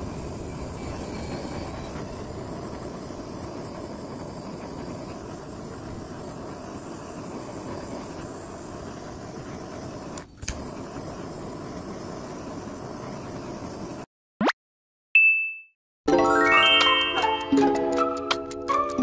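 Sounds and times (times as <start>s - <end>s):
blowtorch hissing: 0.0s - 14.1s
sharp blowtorch click: 7.3s - 11.3s.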